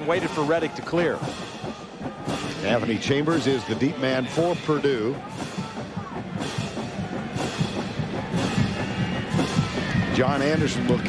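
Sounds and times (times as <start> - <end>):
drum-driven band music: 0.0 - 11.0
heavy drum strikes: 0.0 - 11.0.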